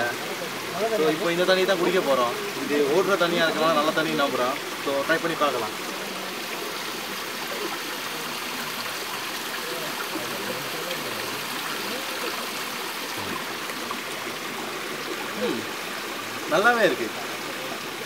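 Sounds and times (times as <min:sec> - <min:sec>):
faint voices: 0:00.0 - 0:18.0
stream running over rocks: 0:00.0 - 0:18.0.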